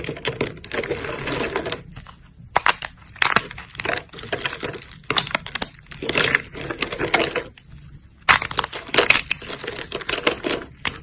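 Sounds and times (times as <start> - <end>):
soap plates cracking and crunching: 0.0 - 11.0.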